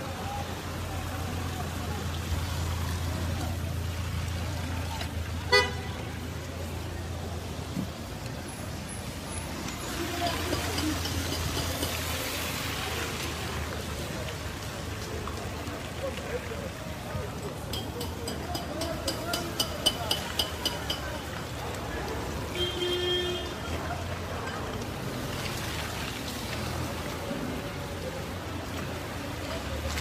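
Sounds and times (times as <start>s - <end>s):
people talking: 0.0s - 5.2s, 9.8s - 25.5s, 26.8s - 30.0s
street traffic on wet road: 0.0s - 30.0s.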